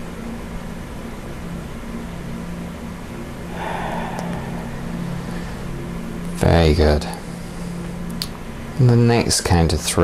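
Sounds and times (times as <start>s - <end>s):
low mechanical hum: 0.0s - 10.0s
room hiss: 0.0s - 10.0s.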